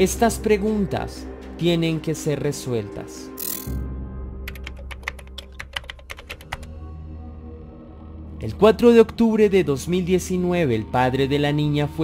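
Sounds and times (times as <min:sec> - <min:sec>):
keyboard typing clicks: 0:04.5 - 0:06.7.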